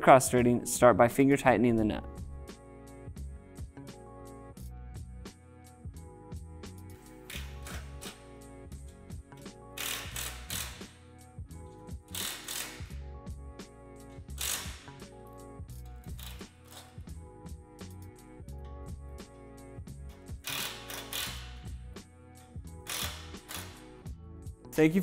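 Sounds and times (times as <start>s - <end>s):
background music with steady beat: 0.0s - 25.0s.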